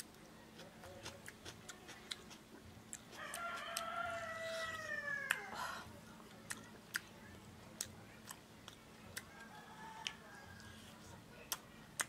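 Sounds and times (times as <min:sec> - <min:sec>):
man chewing and lip smacking: 0:00.0 - 0:05.4, 0:06.4 - 0:07.1, 0:07.8 - 0:10.8
rooster crowing: 0:03.2 - 0:05.6, 0:09.3 - 0:10.7.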